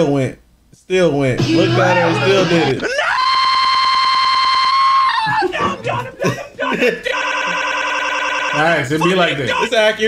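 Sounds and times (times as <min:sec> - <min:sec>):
glitching buzzing voice tone: 0:01.4 - 0:02.8
garbled yelling: 0:01.4 - 0:10.0.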